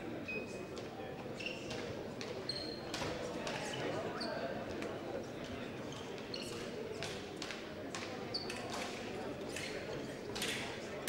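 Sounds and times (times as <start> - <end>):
shoe squeak: 1.4 - 1.8, 2.5 - 2.9, 5.9 - 6.7.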